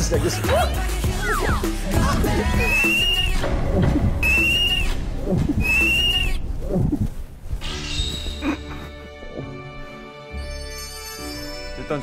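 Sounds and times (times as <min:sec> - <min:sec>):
high whistle-like tone: 0:02.5 - 0:03.4, 0:04.2 - 0:06.4.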